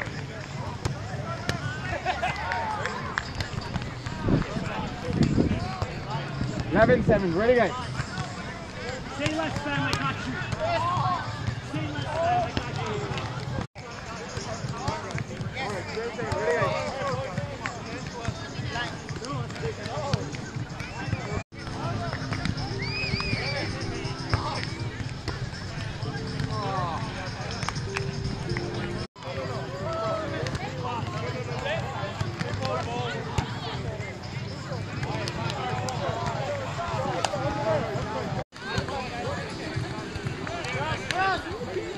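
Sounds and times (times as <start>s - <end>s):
people chattering and calling: 0.0s - 41.9s.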